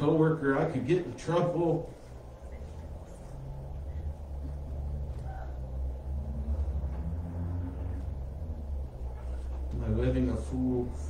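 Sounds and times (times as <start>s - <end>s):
steady low room rumble: 0.0s - 11.0s.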